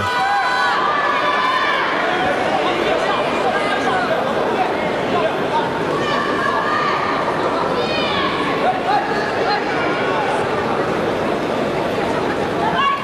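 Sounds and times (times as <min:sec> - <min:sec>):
crowd shouting: 0:00.0 - 0:04.1.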